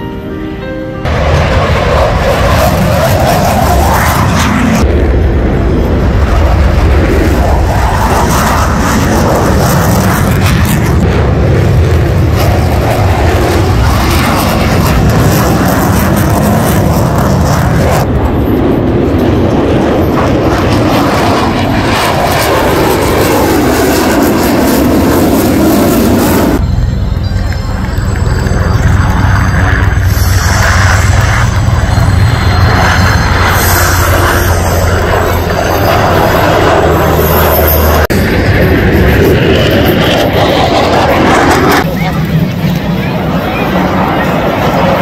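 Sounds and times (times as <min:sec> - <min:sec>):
jet engines roaring: 0:00.0 - 0:45.0.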